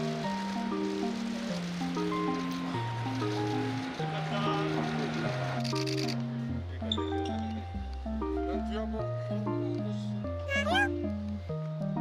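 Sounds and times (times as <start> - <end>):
bouncy background music: 0.0 - 12.0.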